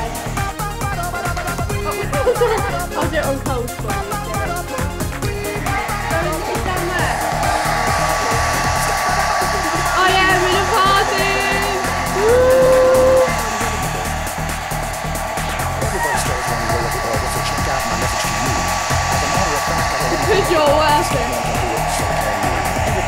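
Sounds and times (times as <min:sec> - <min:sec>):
dance music with steady beat: 0:00.0 - 0:23.0
hair dryer blowing: 0:00.0 - 0:23.0.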